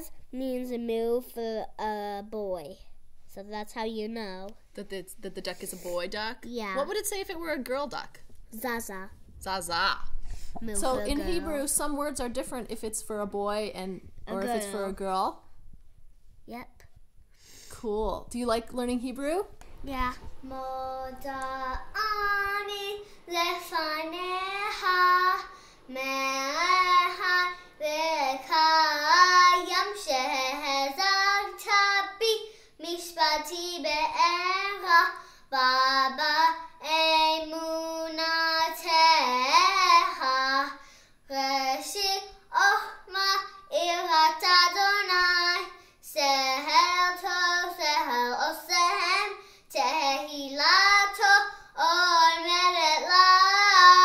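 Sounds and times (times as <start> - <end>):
girl singing: 10.3 - 11.6, 19.8 - 54.0.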